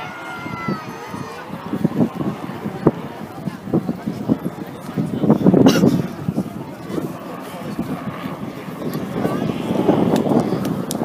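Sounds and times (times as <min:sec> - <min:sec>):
helicopter flying past: 0:00.0 - 0:11.0.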